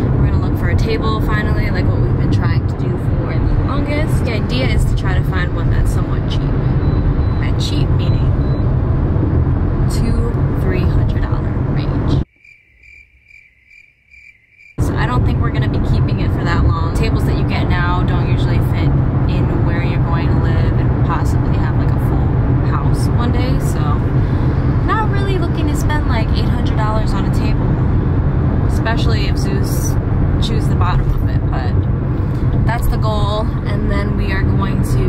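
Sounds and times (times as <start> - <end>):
car cabin road rumble: 0.0 - 12.3, 14.8 - 35.0
faint repeating beep: 6.7 - 8.8.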